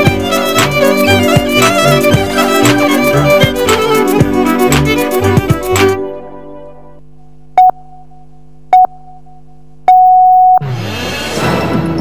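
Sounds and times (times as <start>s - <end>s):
electronic countdown beeps: 7.6s - 10.6s.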